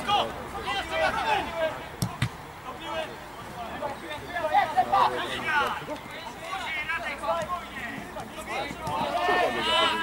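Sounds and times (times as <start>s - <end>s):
players shouting: 0.0s - 10.0s.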